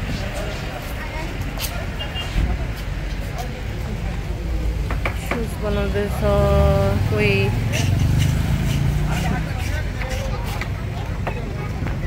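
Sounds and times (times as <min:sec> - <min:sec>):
indistinct chatter of people: 0:00.0 - 0:12.0
road traffic noise: 0:00.0 - 0:12.0.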